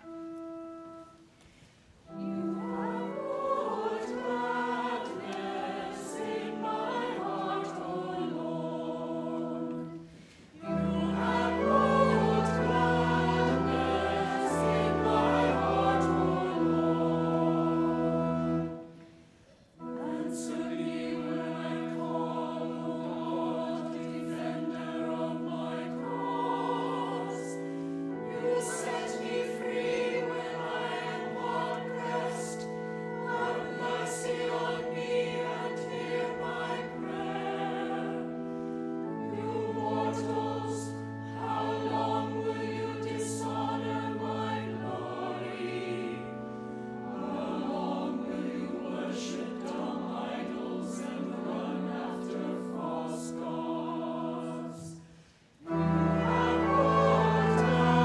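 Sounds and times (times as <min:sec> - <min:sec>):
pipe organ: 0:00.0 - 0:58.0
choir singing: 0:02.0 - 0:58.0.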